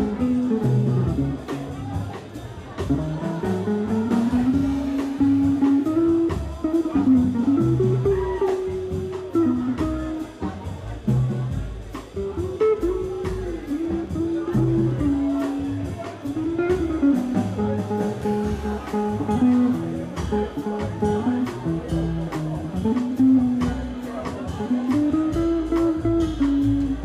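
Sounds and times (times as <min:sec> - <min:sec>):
jazz group playing: 0:00.0 - 0:27.0
walking double bass: 0:00.0 - 0:27.0.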